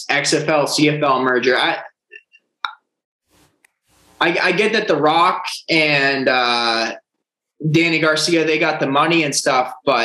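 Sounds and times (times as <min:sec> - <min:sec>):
person speaking: 0:00.0 - 0:02.3, 0:04.2 - 0:07.0, 0:07.6 - 0:10.0.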